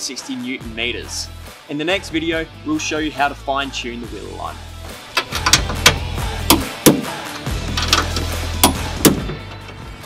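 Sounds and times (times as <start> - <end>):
background music with a beat: 0.0 - 10.0.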